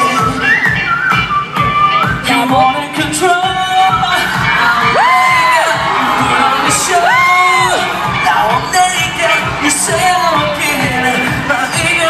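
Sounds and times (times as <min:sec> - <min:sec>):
live dance music: 0:00.0 - 0:12.0
crowd cheering: 0:03.4 - 0:12.0
long whoops: 0:04.8 - 0:08.0.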